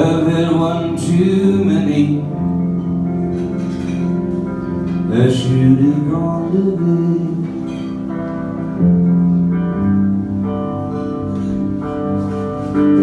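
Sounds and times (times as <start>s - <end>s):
held keyboard chords: 0.0s - 13.0s
live guitar: 0.0s - 13.0s.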